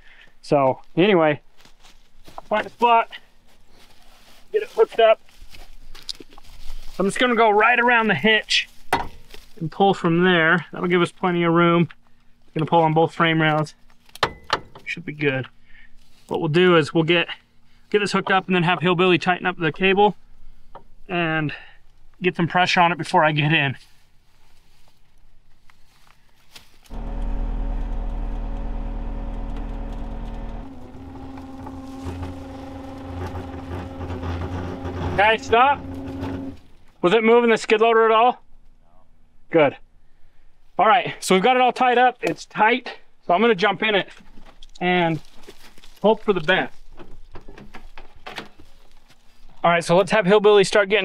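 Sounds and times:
footsteps on rocks and brush: 0.8 - 9.7, 23.8 - 34.2, 44.2 - 49.6
car door pulled open: 26.9 - 36.7
motor winch droning: 26.9 - 36.8.

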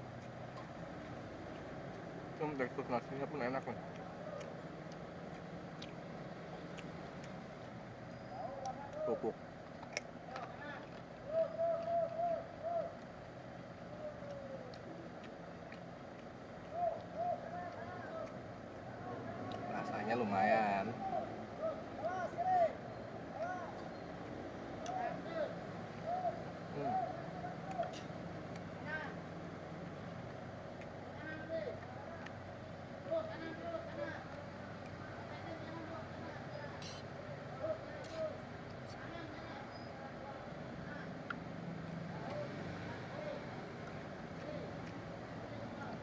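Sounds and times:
traffic hum: 0.0 - 46.0
indistinct voices: 31.0 - 46.0.

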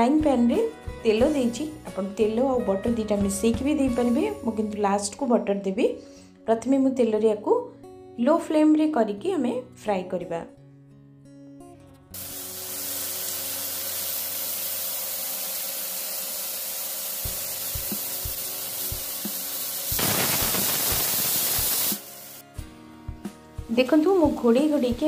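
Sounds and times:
chicken sizzling in oil: 12.2 - 22.4.

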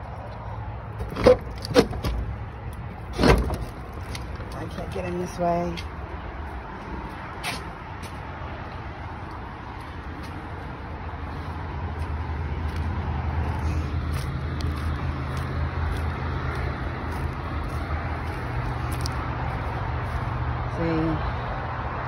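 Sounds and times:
traffic noise: 0.0 - 22.0.

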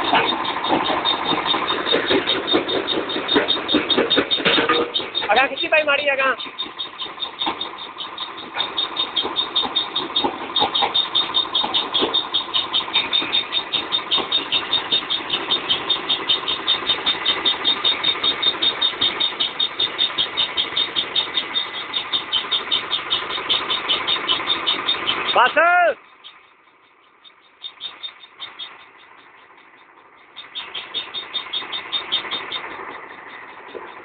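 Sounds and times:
crusher machine pulsing: 0.0 - 26.4.

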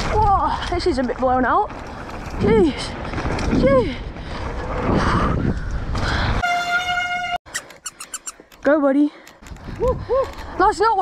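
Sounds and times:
wind and bike tyre rumble: 0.0 - 6.4, 9.4 - 11.0.

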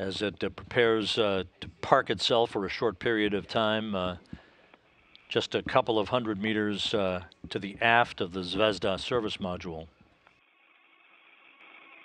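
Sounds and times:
radio channel hiss: 0.0 - 9.9.

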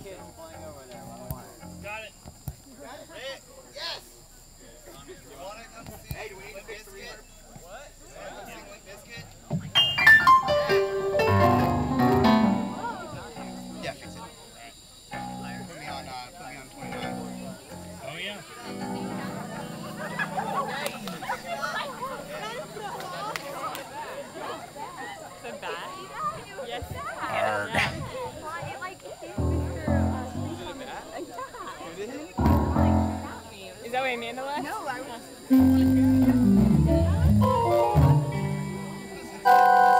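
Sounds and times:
murmur of voices: 0.0 - 39.9
people talking: 0.0 - 39.9
electronic keyboard playing: 9.8 - 13.3, 29.4 - 30.9, 32.4 - 33.5, 35.5 - 39.9.

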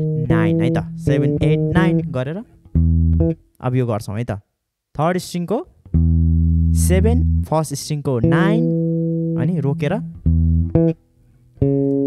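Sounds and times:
electric bass guitar plucked: 0.0 - 3.5, 5.9 - 12.0.

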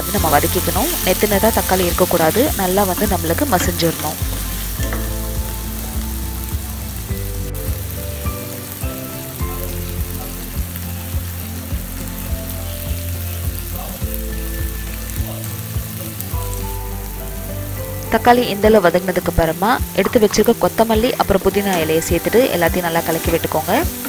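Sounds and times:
slow background music: 0.0 - 24.0
vegetables sizzling in oil: 0.0 - 24.0.

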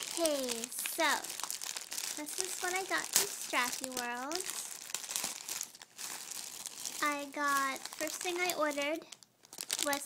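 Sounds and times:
plastic packaging crinkling: 0.0 - 10.0.

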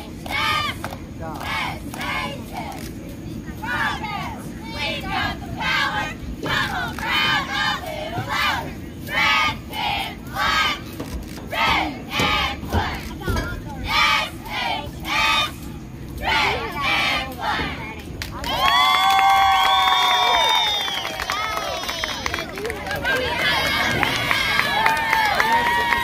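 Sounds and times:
cheerleaders shouting a chant: 0.0 - 2.9, 3.6 - 20.5, 21.2 - 26.0.

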